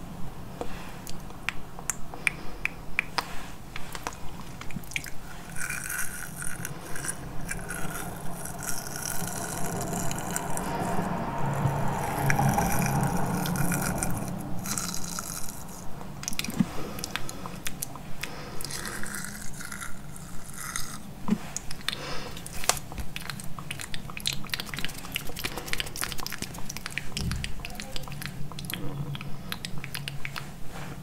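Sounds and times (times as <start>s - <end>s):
teeth nibbling wet clicks: 1.0s - 10.8s, 13.4s - 21.0s, 21.6s - 30.5s.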